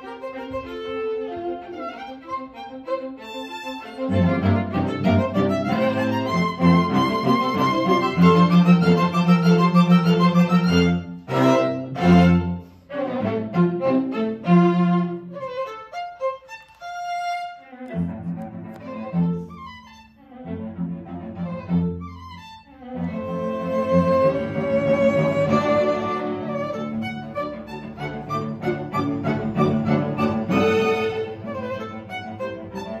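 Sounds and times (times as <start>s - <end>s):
string quartet playing: 0.0s - 33.0s.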